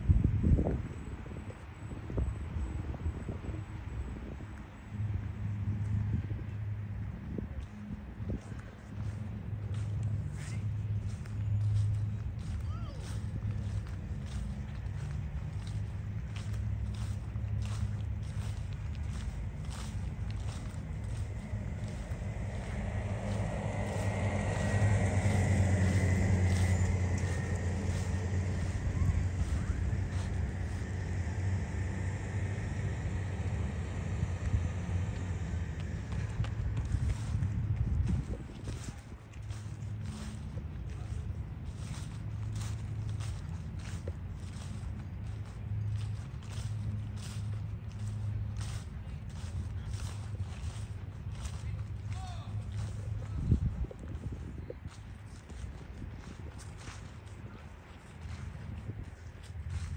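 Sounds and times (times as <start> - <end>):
steady low rumble: 0.0 - 59.9
vehicle passing: 1.8 - 59.9
footsteps with clicks and crunches: 3.8 - 59.9.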